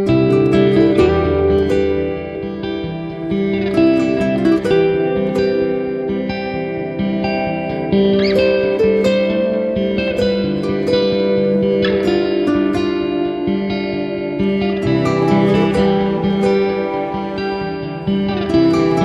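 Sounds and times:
plucked guitar music: 0.0s - 19.0s.

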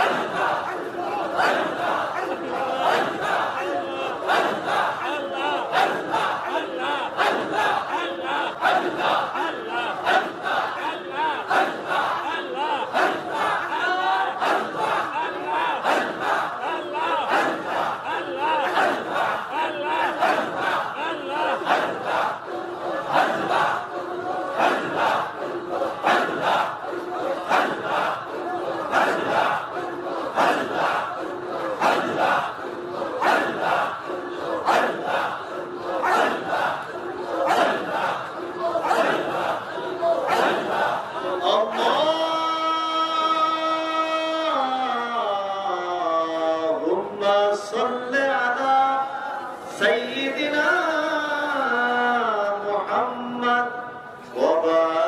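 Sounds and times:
men chanting together: 0.0s - 55.0s.

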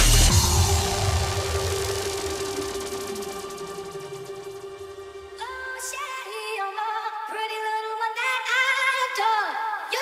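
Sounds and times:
held synth chord: 0.0s - 6.4s.

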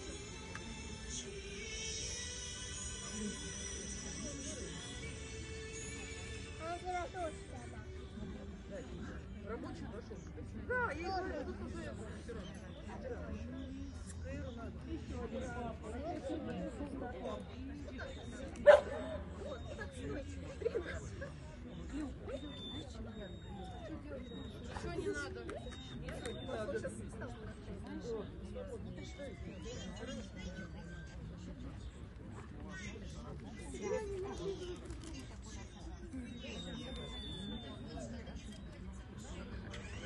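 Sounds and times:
people talking: 0.0s - 40.0s.

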